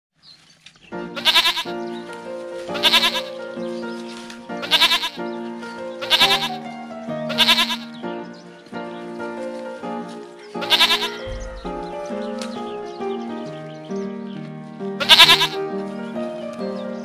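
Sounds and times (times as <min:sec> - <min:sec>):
background music with sustained notes: 0:00.4 - 0:17.0
goat bleating: 0:01.2 - 0:01.7, 0:02.7 - 0:03.4, 0:04.6 - 0:05.2, 0:06.0 - 0:06.6, 0:07.3 - 0:07.9, 0:10.6 - 0:11.8, 0:15.0 - 0:15.6.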